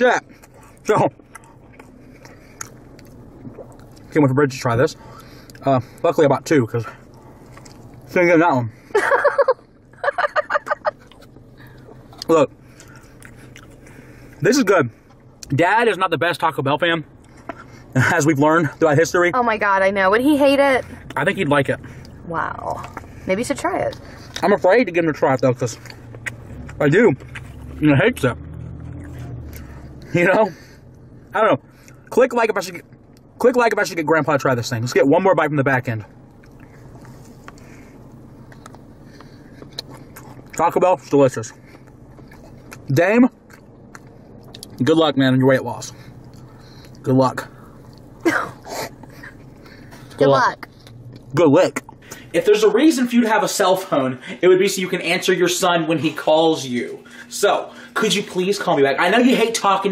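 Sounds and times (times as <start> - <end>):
low steady hum: 0.0 - 59.9
faint chewing with crackles: 0.2 - 8.2, 10.6 - 15.6, 21.0 - 32.1, 35.8 - 52.4
person laughing high-pitched: 9.0 - 11.1.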